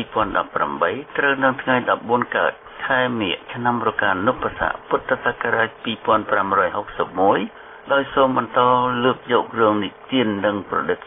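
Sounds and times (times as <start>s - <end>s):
news reader talking: 0.0s - 11.0s.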